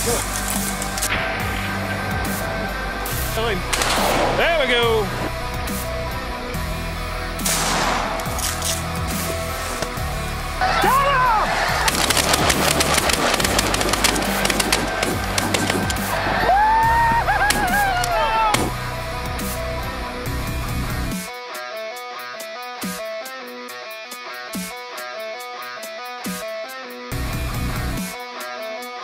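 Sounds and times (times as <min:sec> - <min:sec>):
heavy rock music: 0:00.0 - 0:29.0
shotgun shots: 0:03.7 - 0:04.4, 0:07.4 - 0:08.8, 0:11.8 - 0:16.1.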